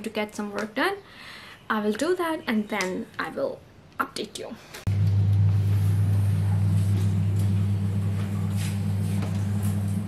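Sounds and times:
loud steady low hum: 0:04.9 - 0:10.0.

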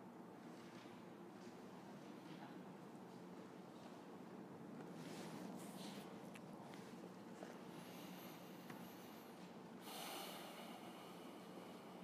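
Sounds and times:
low steady hum: 0:00.0 - 0:12.0
person breathing: 0:07.4 - 0:12.0.

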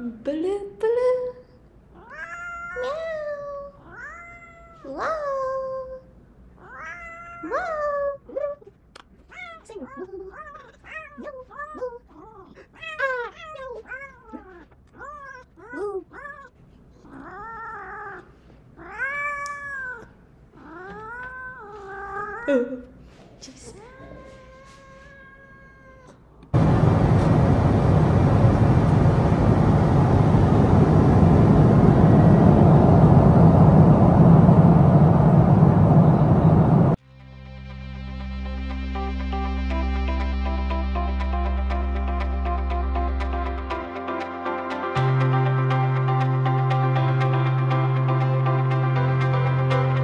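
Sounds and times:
cat meowing: 0:01.9 - 0:05.0, 0:06.6 - 0:07.8, 0:18.8 - 0:22.5, 0:23.7 - 0:26.2
loud rushing noise: 0:26.6 - 0:37.0.

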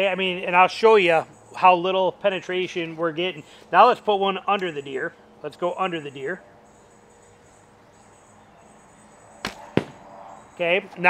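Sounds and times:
arrow striking rubber mat: 0:09.4 - 0:10.1.

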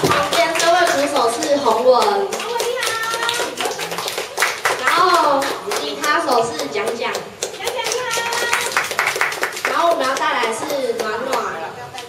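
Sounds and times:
small group clapping: 0:00.0 - 0:12.0
voices calling out and talking: 0:00.0 - 0:12.0.

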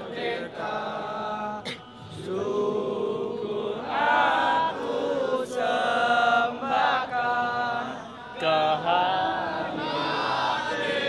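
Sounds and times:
crowd of men singing in unison: 0:00.0 - 0:11.0.

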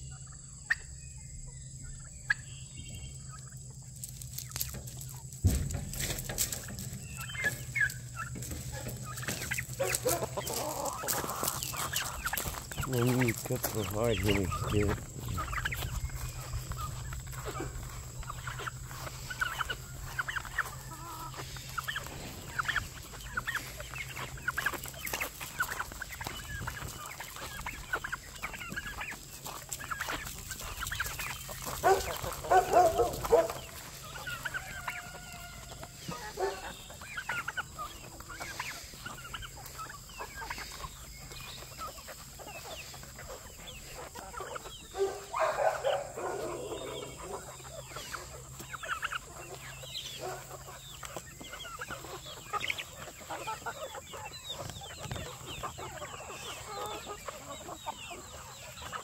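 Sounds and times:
chickens clucking: 0:00.0 - 0:59.0
loud long chicken calls: 0:00.0 - 0:59.0.

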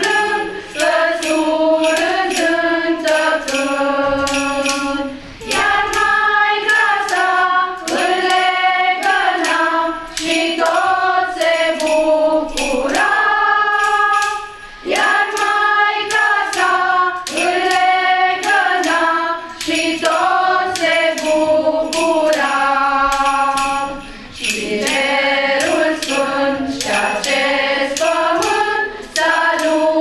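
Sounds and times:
shaken percussion beat: 0:00.0 - 0:30.0
women's choir singing: 0:00.0 - 0:30.0.

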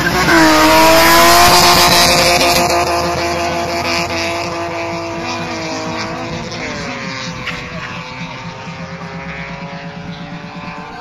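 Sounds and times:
race car engines roaring: 0:00.0 - 0:11.0.

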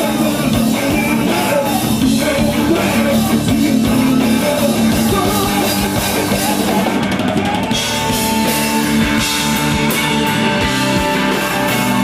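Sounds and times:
blues-rock band playing: 0:00.0 - 0:12.0.

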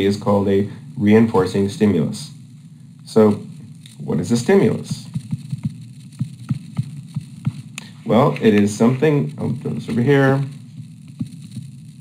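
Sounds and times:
low steady hum: 0:00.0 - 0:12.0
stylus tapping on touchscreen: 0:04.9 - 0:08.7.

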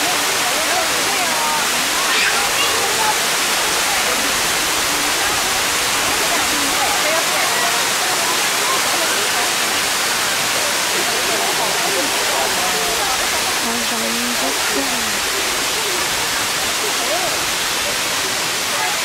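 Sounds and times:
faint voices talking: 0:00.0 - 0:19.0
waterfall pouring onto rocks: 0:00.0 - 0:19.0.

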